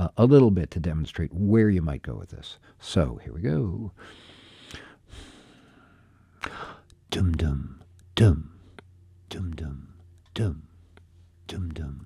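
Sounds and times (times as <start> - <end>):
man exhaling: 4.0 - 6.9
sharp intake of breath: 4.0 - 6.9.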